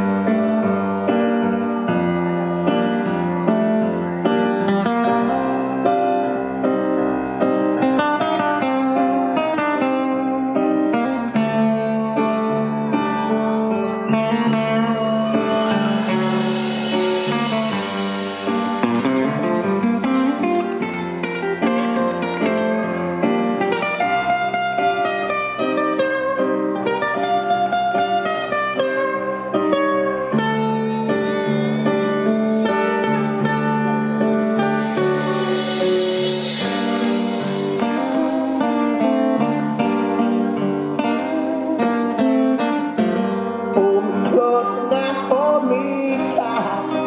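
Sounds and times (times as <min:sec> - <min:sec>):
acoustic guitars picking: 0:00.0 - 0:47.0
high hiss: 0:14.5 - 0:21.0, 0:34.4 - 0:38.9.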